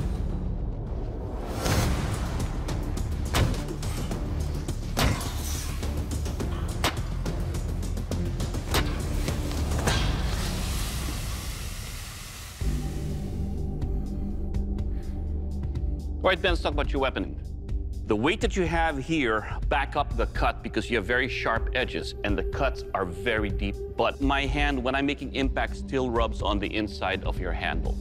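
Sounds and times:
dramatic background music: 0:00.0 - 0:28.0.

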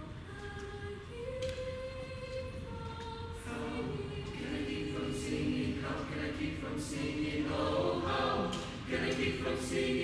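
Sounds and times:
choir singing a cappella: 0:00.8 - 0:10.0.

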